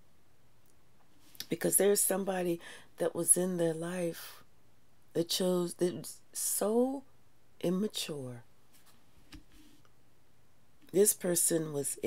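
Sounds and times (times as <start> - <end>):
woman speaking: 1.4 - 4.4, 5.2 - 7.0, 7.6 - 8.4, 10.9 - 12.0
faint hiss: 6.0 - 12.0.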